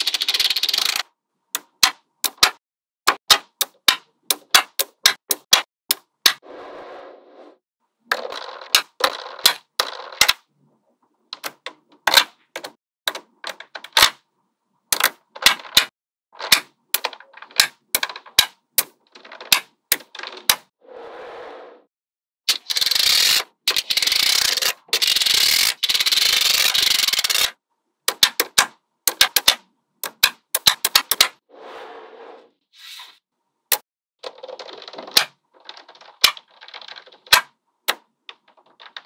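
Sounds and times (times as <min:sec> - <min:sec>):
magnetic balls clicking together: 0:00.0 - 0:06.1, 0:28.1 - 0:31.4, 0:33.7 - 0:39.0.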